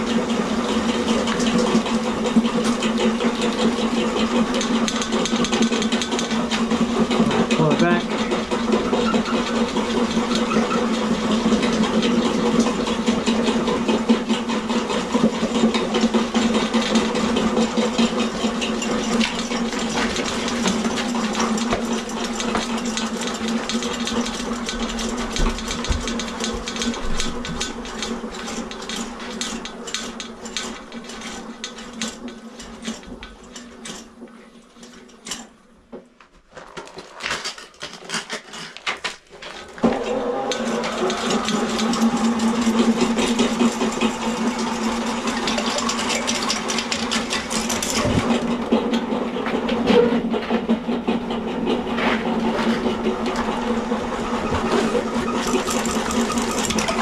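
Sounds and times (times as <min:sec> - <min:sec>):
drain-cleaning machine running: 0:00.0 - 0:35.8, 0:37.2 - 0:57.0
snake cable rattling and clicking: 0:02.6 - 0:07.3, 0:15.6 - 0:34.1, 0:36.5 - 0:39.8, 0:40.8 - 0:48.9, 0:52.8 - 0:57.0.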